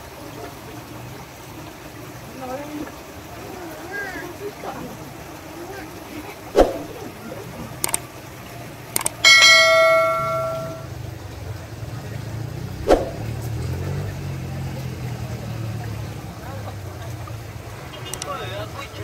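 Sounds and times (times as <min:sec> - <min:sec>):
notification bell chime: 0:09.2 - 0:10.9.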